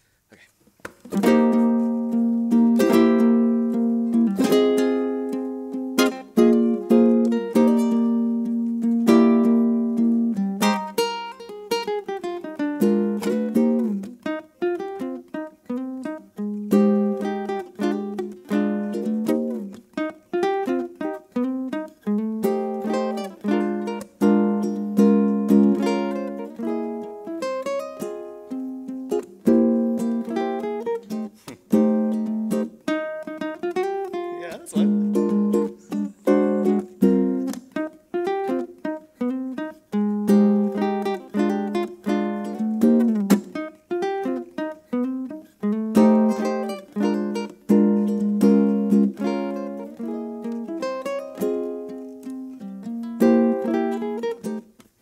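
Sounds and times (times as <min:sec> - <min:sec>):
ukulele playing: 0:00.7 - 0:55.0.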